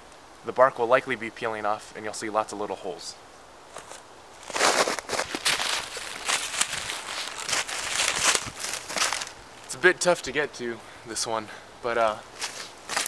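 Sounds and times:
footsteps crunching through snow: 3.7 - 9.8, 12.3 - 13.0.

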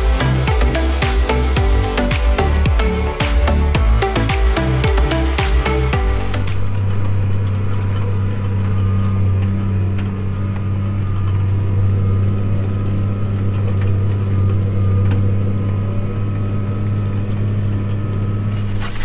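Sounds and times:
background music: 0.0 - 13.5
tractor engine drone: 0.0 - 19.0.

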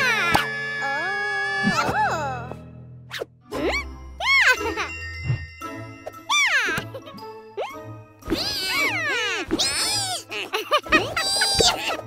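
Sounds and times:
light cartoon music: 0.0 - 12.0.

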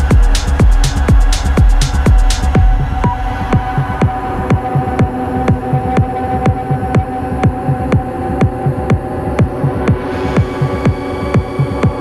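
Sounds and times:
electronic dance music: 0.0 - 12.0
kick drum beat: 0.0 - 12.0.

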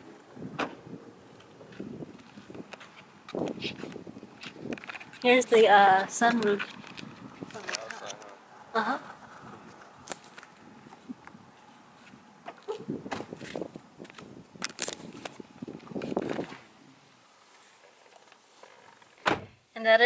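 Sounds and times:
footsteps: 1.3 - 8.4, 9.1 - 16.7
rustling: 9.1 - 19.3.

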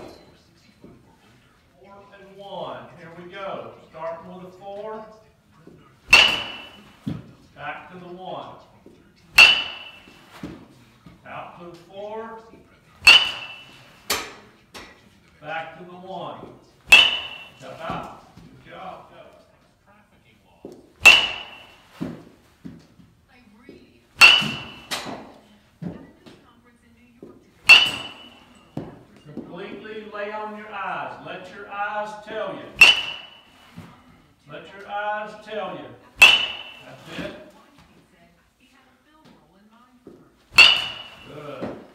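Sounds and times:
metal bat hitting baseball: 6.0 - 7.2, 9.3 - 10.6, 13.0 - 14.5, 16.8 - 18.2, 21.0 - 22.3, 24.2 - 25.4, 27.6 - 28.9, 32.3 - 33.9, 36.2 - 37.5, 40.5 - 41.9
balls landing in cage: 24.2 - 25.4.

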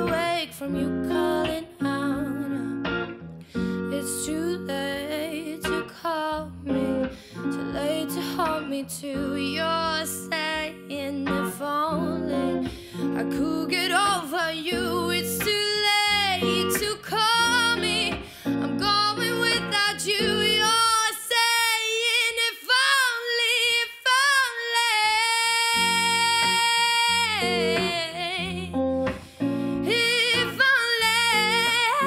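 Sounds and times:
guitar: 0.0 - 32.0
woman singing: 0.0 - 32.0.

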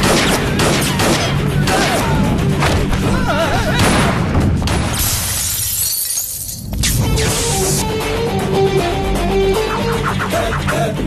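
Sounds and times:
film background score: 0.0 - 5.6, 6.6 - 11.0
glass shattering: 5.2 - 6.7.

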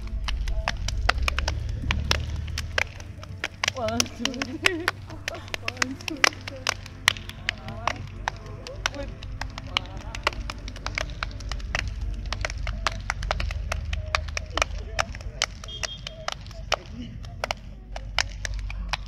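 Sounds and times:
people clapping: 0.0 - 19.0
voices in background: 0.0 - 19.0.

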